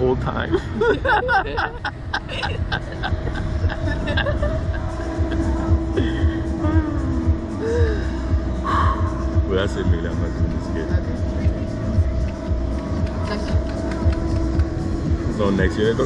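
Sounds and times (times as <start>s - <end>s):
low rumble: 0.0s - 16.0s
people laughing: 0.4s - 6.8s.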